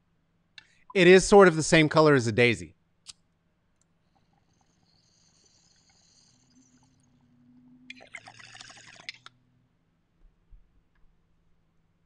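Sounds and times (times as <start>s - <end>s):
water bubbling in bong: 7.9s - 9.3s.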